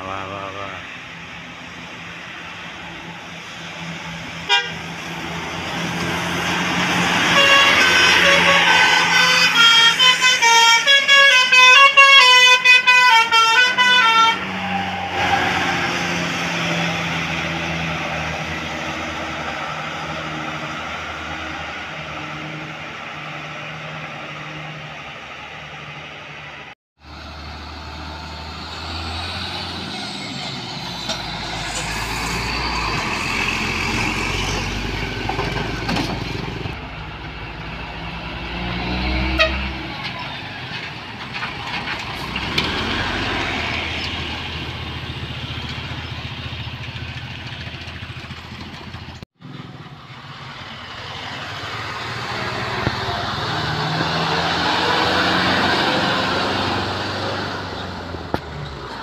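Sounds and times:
multi-tone musical bus horn: 4.4s - 4.9s, 7.2s - 15.6s, 39.1s - 39.9s
bus engine driving past: 14.0s - 59.0s.

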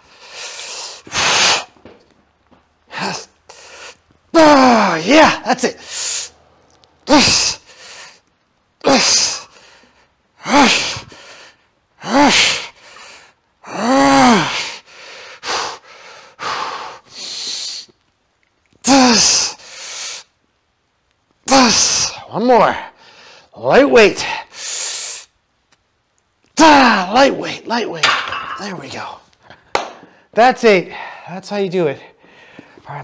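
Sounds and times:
man grunting: 2.9s - 3.3s, 4.4s - 5.8s, 7.1s - 7.6s, 8.8s - 9.4s, 10.4s - 11.0s, 12.0s - 12.6s, 13.7s - 14.6s, 18.9s - 19.5s, 26.6s - 27.5s
man breathing forcefully: 9.2s - 13.4s, 14.3s - 17.9s.

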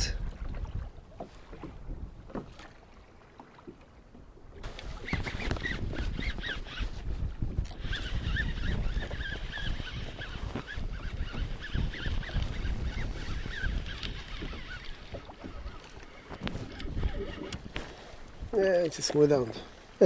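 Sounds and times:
fishing reel whine: 4.7s - 17.7s.

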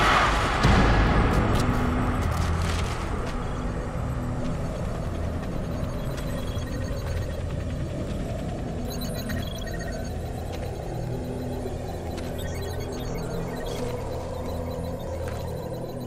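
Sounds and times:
steady low rumble: 0.0s - 16.0s
high tones: 5.1s - 16.0s.

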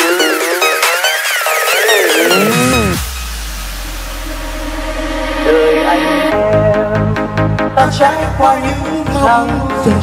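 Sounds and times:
held synth tones: 1.9s - 3.0s
deep bass drone: 2.2s - 7.9s.

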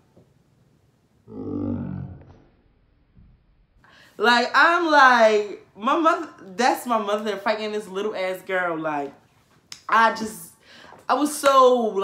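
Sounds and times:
low voice-like grunt: 1.3s - 2.5s.

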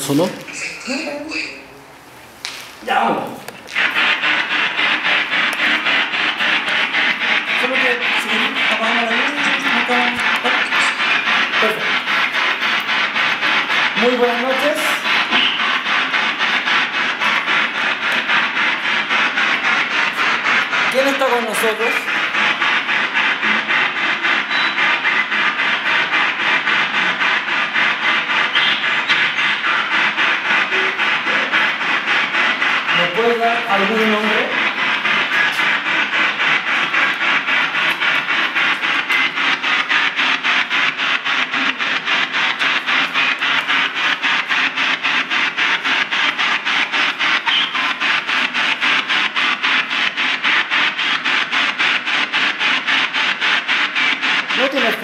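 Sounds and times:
pulsing radio static: 0.0s - 1.8s, 2.8s - 55.0s.

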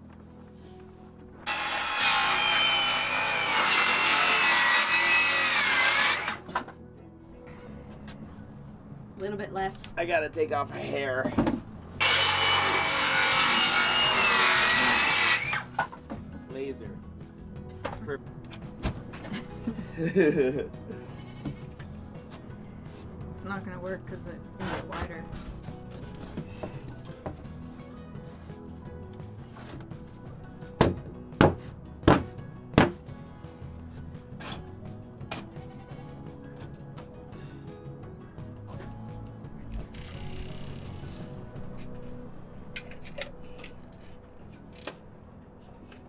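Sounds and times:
background music: 0.0s - 46.0s
circular saw cutting plywood: 1.4s - 6.5s, 12.0s - 15.9s
board knocking against wooden frame: 30.8s - 33.0s.

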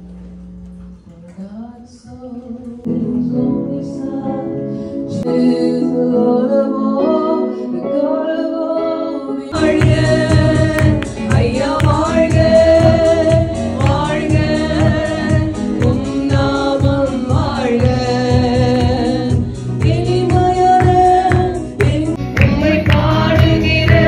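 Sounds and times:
women singing into microphones: 1.1s - 24.0s
steady bass beat: 9.6s - 21.1s.

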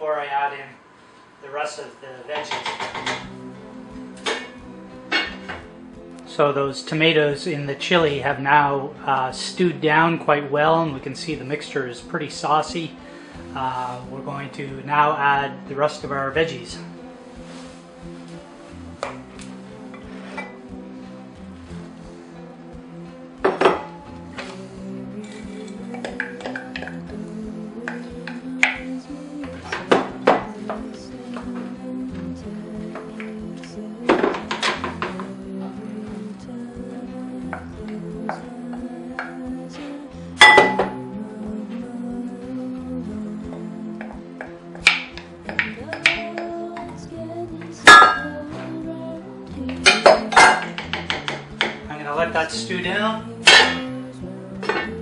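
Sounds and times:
background music: 0.0s - 55.0s
spoon clinking against dish and pot: 4.2s - 5.6s, 25.3s - 27.0s, 40.4s - 41.0s, 47.9s - 48.4s, 49.8s - 51.8s, 53.4s - 54.0s, 54.6s - 55.0s.

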